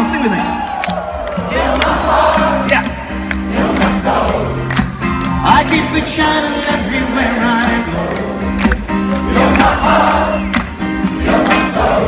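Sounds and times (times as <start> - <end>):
audience singing along: 1.0 - 12.0
strummed acoustic guitar: 1.6 - 12.0.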